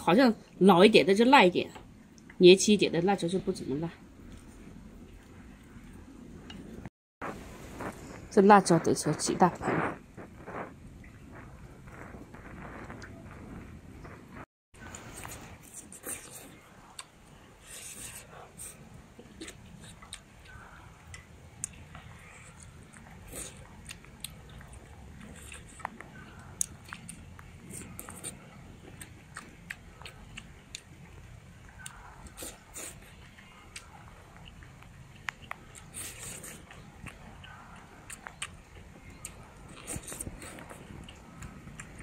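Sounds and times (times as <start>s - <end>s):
person chewing food: 14.8s - 42.0s.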